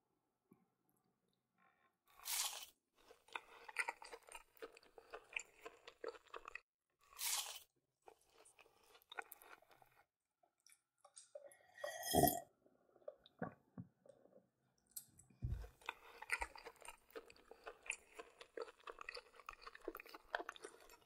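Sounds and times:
chewing crunchy food: 2.1 - 10.1, 15.4 - 21.0.

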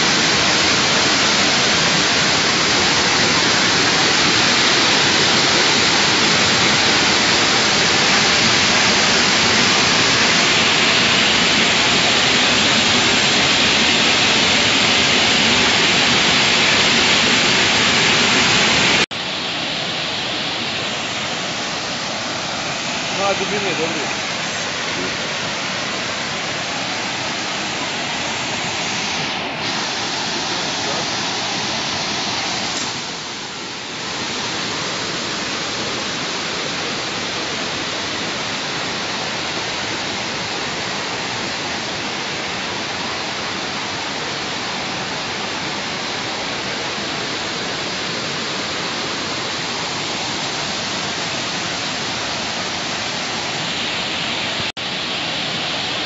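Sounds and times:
water rushing over weir: 0.0 - 56.0.

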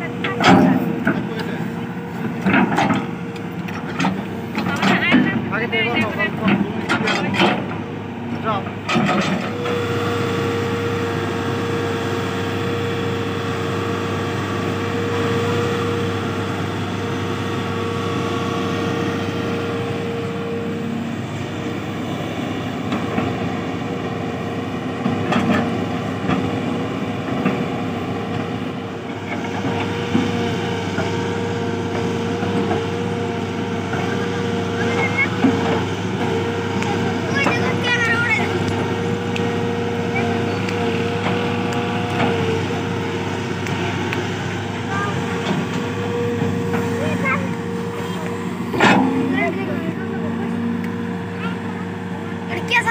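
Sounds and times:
excavator diesel engine running: 0.0 - 52.9.

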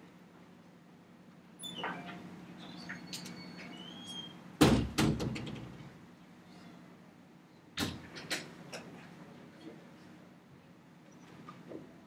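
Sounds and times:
loud sharp knocks: 4.6 - 5.7.

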